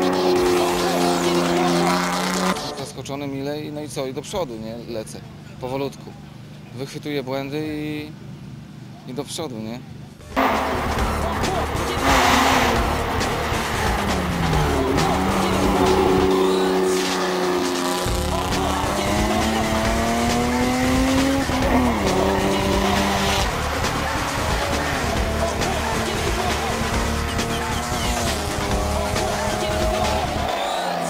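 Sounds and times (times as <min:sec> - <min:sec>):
race car engine pulling hard: 0:00.0 - 0:02.9, 0:10.3 - 0:31.0.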